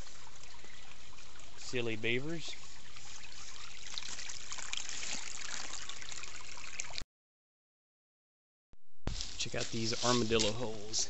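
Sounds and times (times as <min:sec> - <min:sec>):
creek water trickling: 0:00.0 - 0:07.0, 0:09.1 - 0:11.0.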